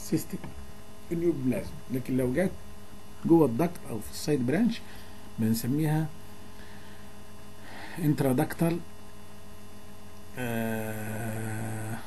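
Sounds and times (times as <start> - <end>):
electrical mains hum: 0.0 - 12.0
man humming a vowel: 10.4 - 12.0.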